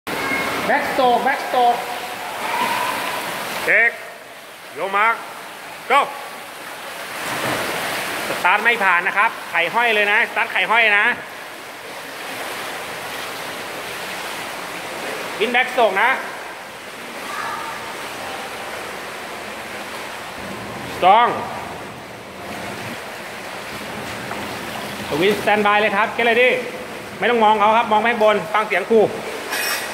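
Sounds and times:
swimmers splashing water: 0.1 - 29.9.

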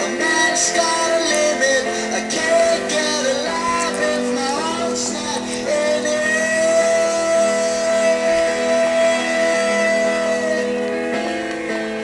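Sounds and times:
guitar accompaniment: 0.0 - 12.0
long held note: 6.1 - 11.3.

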